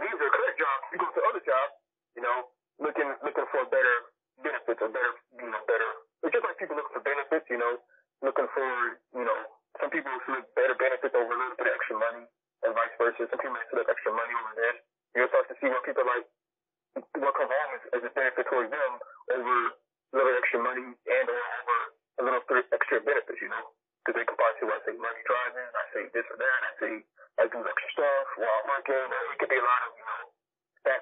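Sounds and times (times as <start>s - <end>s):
man talking over phone: 0.0s - 16.3s, 17.0s - 31.0s.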